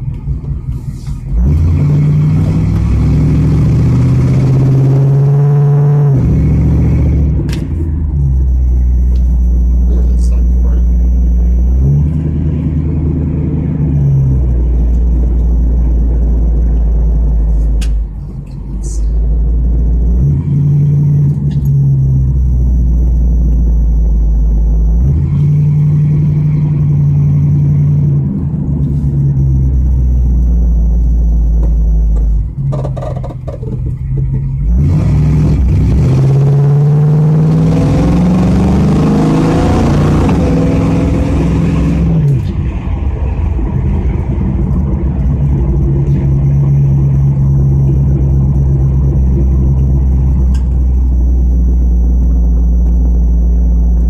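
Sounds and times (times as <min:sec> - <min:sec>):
car engine from inside cabin: 0:00.0 - 0:54.0.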